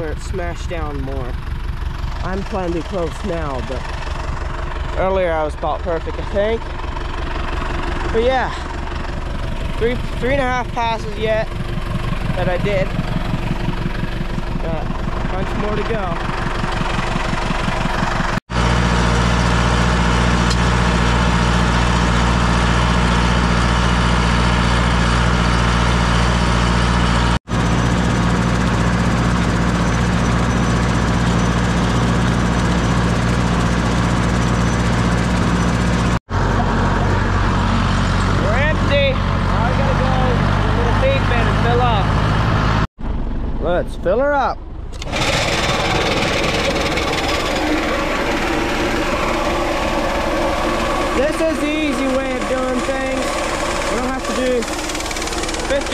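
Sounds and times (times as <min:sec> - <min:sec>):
tractor diesel engine running: 0:00.0 - 0:55.9.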